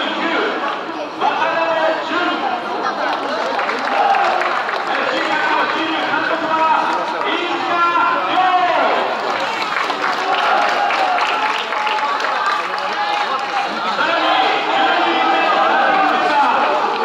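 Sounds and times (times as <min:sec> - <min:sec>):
people talking: 0:00.0 - 0:17.0.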